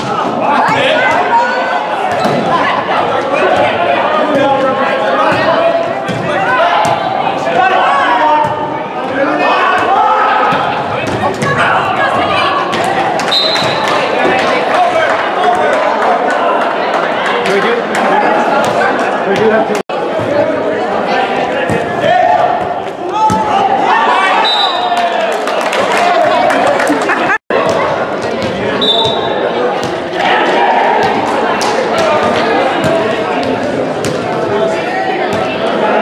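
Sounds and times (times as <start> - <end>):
players' voices echoing: 0.0 - 36.0.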